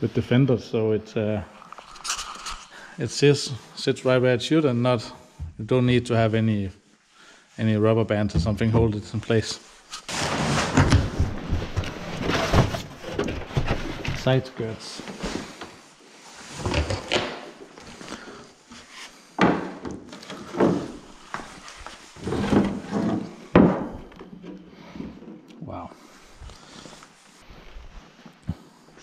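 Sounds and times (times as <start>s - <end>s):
panels knocking and scraping cardboard: 10.0s - 14.5s, 19.4s - 24.4s.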